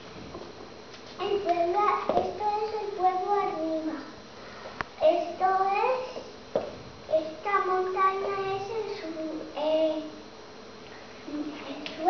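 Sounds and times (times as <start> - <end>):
girl singing: 1.2 - 4.2, 5.0 - 6.2, 7.1 - 10.1.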